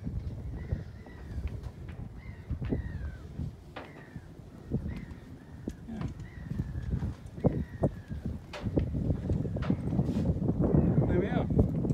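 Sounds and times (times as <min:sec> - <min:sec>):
wind rumble on microphone: 0:00.0 - 0:11.9
faint high bird calls: 0:02.2 - 0:08.3.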